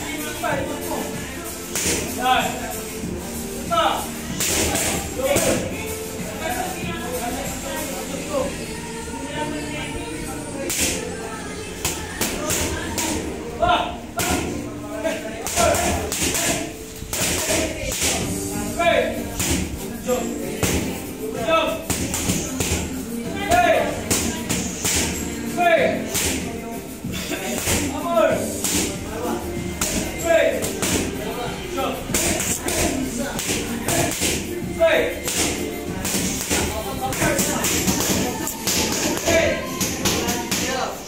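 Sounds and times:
background music with singing: 0.0 - 41.0.

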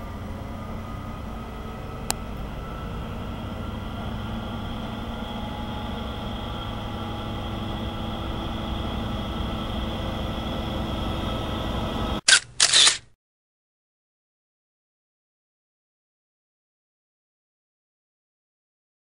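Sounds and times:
diesel locomotive engine running: 0.0 - 13.0
camera shutter clacks: 12.3 - 13.1.

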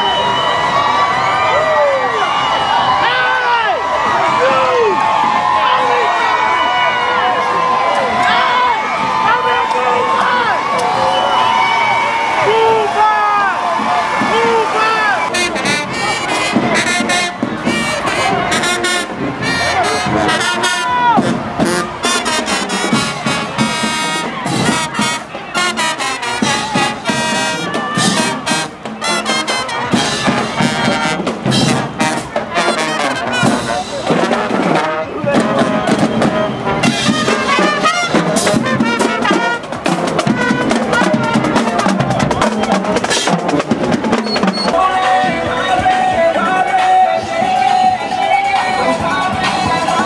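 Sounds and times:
crowd voices: 0.0 - 50.0
marching band playing: 0.0 - 50.0
brass section: 2.3 - 50.0.

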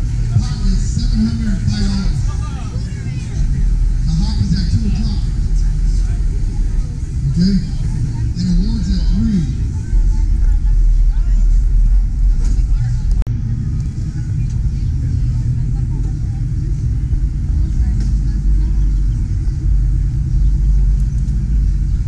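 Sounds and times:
low rumble: 0.0 - 22.0
people talking: 0.0 - 22.0.

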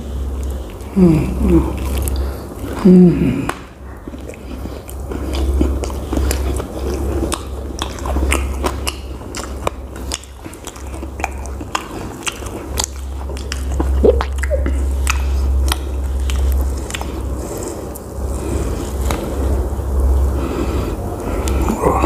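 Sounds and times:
person chewing food: 0.0 - 22.0.

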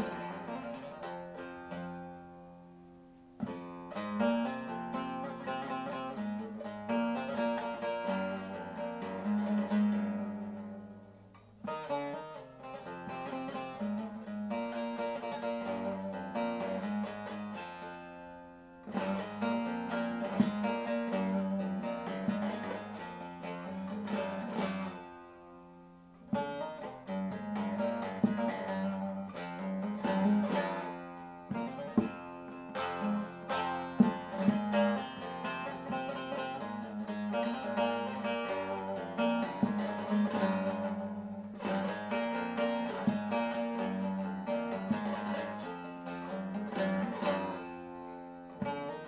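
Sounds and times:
long-necked lute folk melody: 0.0 - 49.0.

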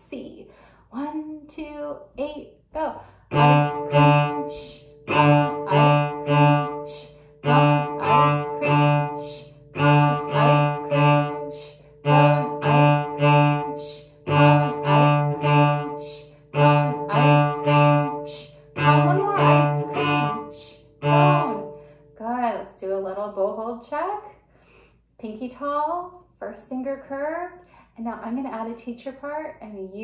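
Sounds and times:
cello bowed strokes: 3.2 - 22.2.

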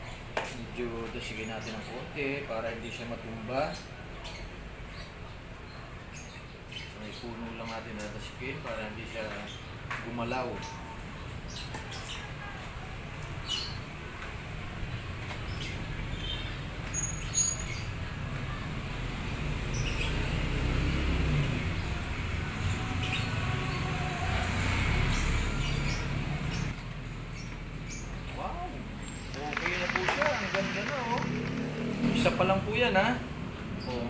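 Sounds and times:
high bird chirps: 15.5 - 18.1
man speaking: 28.4 - 31.5.

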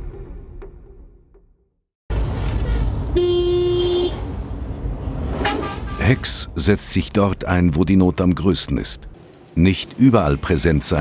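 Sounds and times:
road noise inside moving car: 2.1 - 7.1
vehicle horn: 2.6 - 4.3, 5.4 - 6.4.

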